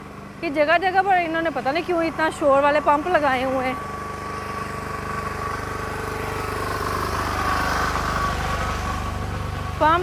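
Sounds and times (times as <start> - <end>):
generator running: 0.0 - 10.0.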